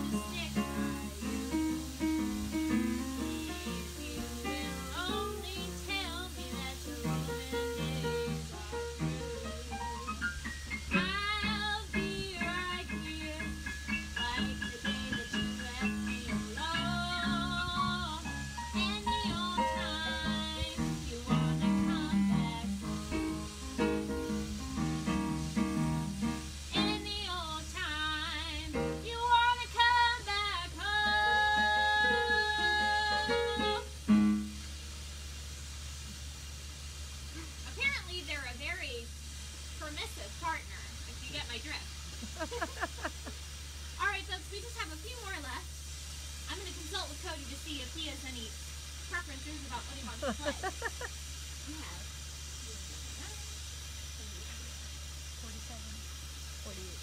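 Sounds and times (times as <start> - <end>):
woman singing: 0.0 - 1.3, 3.0 - 9.3, 10.9 - 22.9, 26.7 - 33.9
digital piano accompaniment: 7.0 - 27.0.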